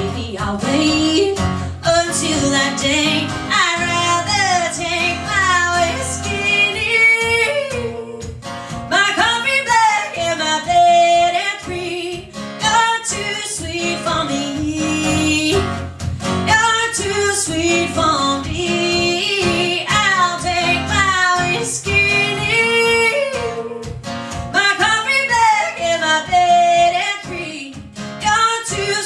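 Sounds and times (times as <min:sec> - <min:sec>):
acoustic guitar: 0:00.0 - 0:29.0
woman singing: 0:00.0 - 0:29.0.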